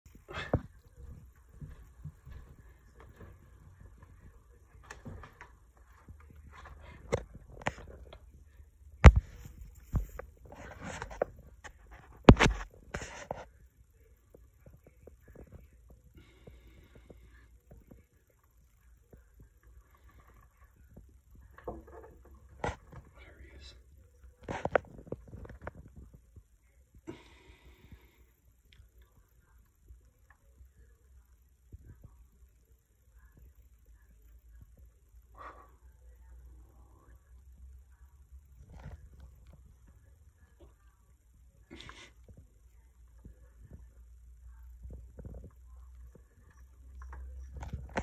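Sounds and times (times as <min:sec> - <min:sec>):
hushed indistinct voices: 0:00.1 - 0:08.6.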